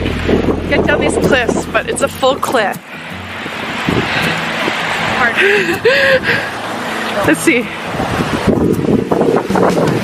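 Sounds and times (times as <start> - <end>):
lake waves washing on shore: 0.0 - 10.0
wind rushing over microphone: 0.0 - 10.0.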